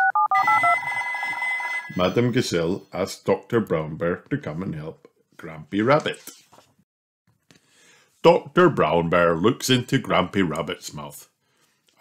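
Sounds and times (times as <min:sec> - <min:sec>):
keypad dialling beeps: 0:00.0 - 0:01.0
electronic phone ring: 0:00.0 - 0:02.3.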